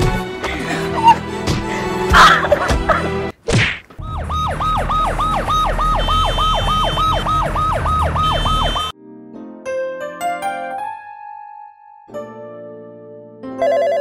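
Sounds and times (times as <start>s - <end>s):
music: 0.0s - 3.4s, 7.8s - 14.0s
ambulance siren yelping: 4.0s - 8.9s.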